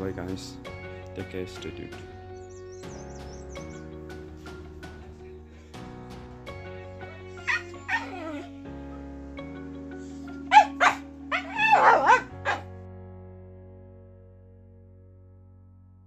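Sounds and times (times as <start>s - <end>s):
soft background music: 0.0s - 16.0s
dog barking and yipping: 7.4s - 8.5s, 10.5s - 12.7s.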